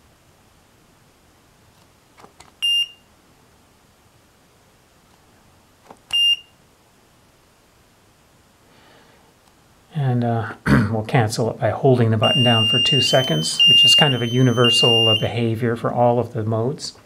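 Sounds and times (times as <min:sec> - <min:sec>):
digital timer beeping: 0:12.2 - 0:15.3.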